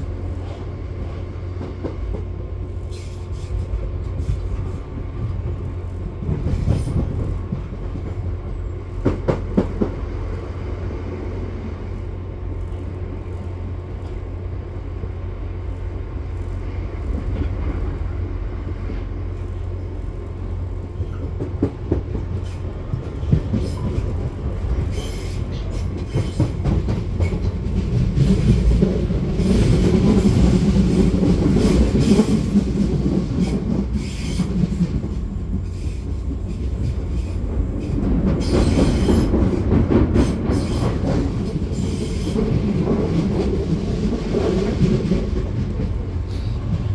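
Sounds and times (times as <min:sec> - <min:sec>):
train interior low rumble: 0:00.0 - 0:46.9.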